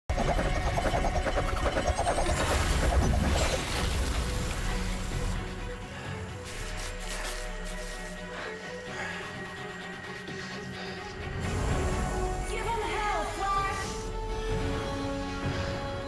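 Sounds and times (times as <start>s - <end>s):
action soundtrack music: 0.1s - 16.0s.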